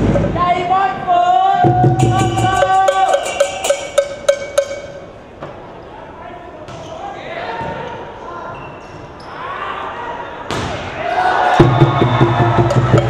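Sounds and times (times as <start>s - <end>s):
hall noise: 0.0s - 5.6s
voices echoing in hall: 0.0s - 13.0s.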